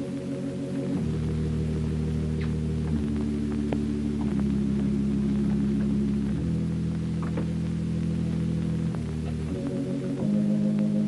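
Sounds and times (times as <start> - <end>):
low sustained organ chords: 0.0 - 11.0.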